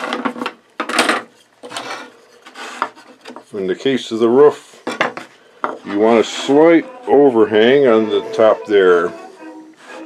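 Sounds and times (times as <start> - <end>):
wood scraping on workbench: 0.0 - 3.5, 4.4 - 10.0.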